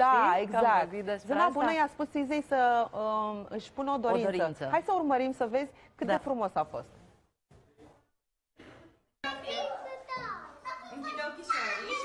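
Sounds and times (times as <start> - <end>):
children's voices: 9.2 - 12.0.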